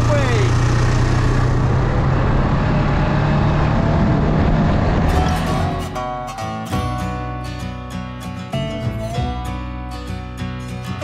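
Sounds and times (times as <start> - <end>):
strummed acoustic guitar music: 5.1 - 11.0.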